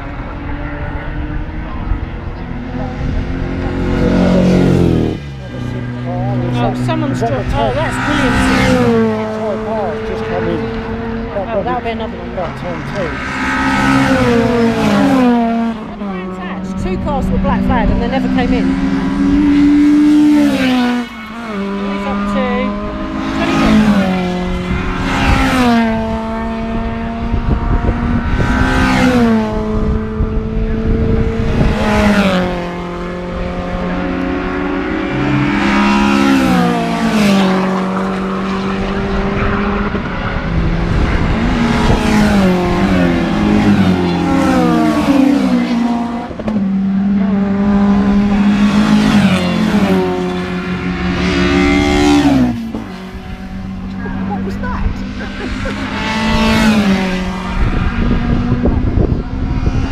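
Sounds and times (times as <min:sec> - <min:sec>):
racing cars passing at speed: 0:00.0 - 0:59.9.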